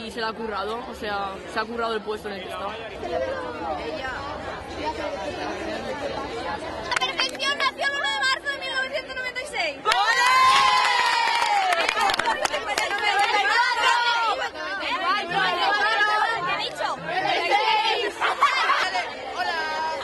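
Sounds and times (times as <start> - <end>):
crowd shouting and cheering: 6.8 - 20.0.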